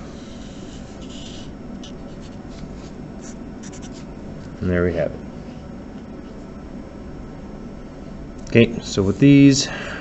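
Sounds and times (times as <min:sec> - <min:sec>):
marker scratching on paper: 0:02.1 - 0:04.1.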